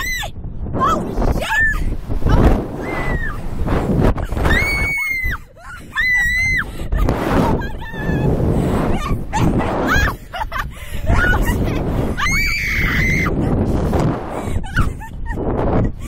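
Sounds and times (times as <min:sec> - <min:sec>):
wind buffeting microphone: 0:00.0 - 0:16.0
women shrieking and laughing: 0:04.2 - 0:13.4, 0:14.6 - 0:16.0
high-pitched screams: 0:04.5 - 0:05.4, 0:12.2 - 0:13.4.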